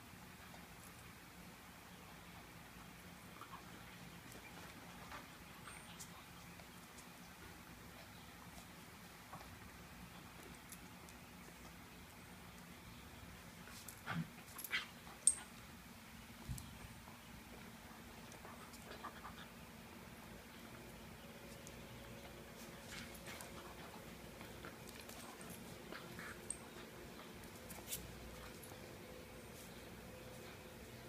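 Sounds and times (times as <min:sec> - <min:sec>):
dogs scuffling: 0:21.4 - 0:30.6.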